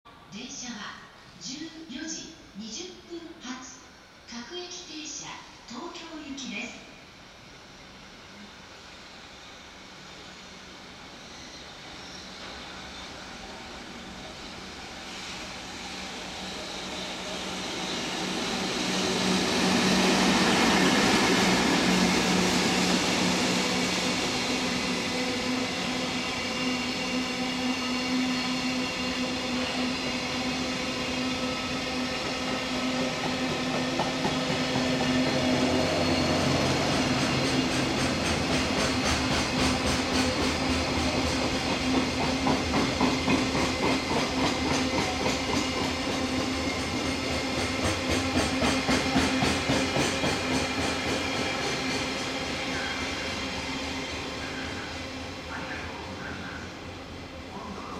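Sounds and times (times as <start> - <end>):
electric locomotive passing: 0.2 - 57.9.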